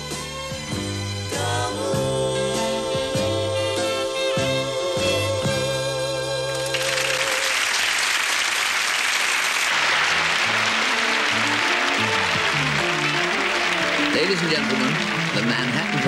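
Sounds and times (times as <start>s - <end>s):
audience applauding: 6.6s - 16.0s
band playing: 9.7s - 16.0s.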